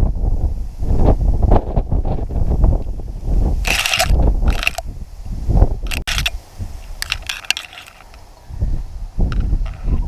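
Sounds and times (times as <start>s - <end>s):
wind rumbling on microphone: 0.0s - 10.0s
dry grass rustling against microphone: 0.7s - 10.0s.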